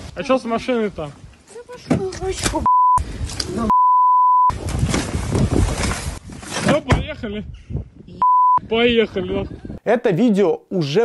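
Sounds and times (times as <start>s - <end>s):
high censor beep: 2.7s - 3.0s, 3.7s - 4.5s, 8.2s - 8.6s.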